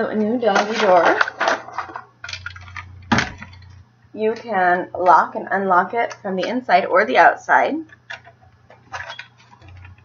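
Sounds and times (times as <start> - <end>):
plastic frame knocking and rustling: 0.6 - 3.8, 8.1 - 10.0.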